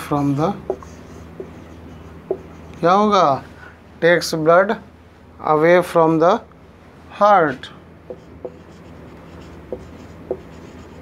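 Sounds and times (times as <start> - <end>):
marker scratching on whiteboard: 0.0 - 3.0, 8.1 - 11.0.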